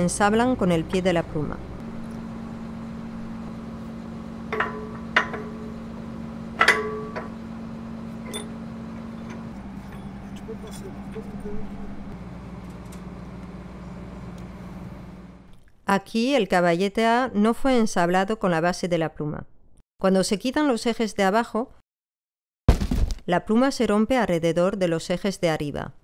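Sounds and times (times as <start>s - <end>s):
low mechanical hum: 0.0s - 15.8s.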